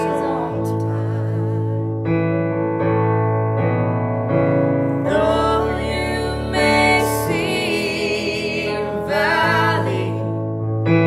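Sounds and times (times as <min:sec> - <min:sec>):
electric keyboard piano chords: 0:00.0 - 0:11.0.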